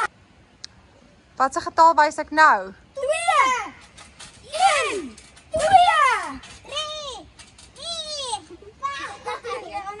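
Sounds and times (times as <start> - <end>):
children talking and calling out: 2.8 - 10.0.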